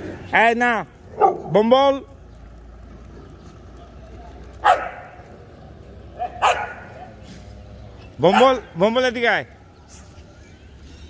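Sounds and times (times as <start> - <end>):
dog barking: 1.1 - 1.6, 4.6 - 5.2, 6.2 - 7.2, 8.3 - 8.6.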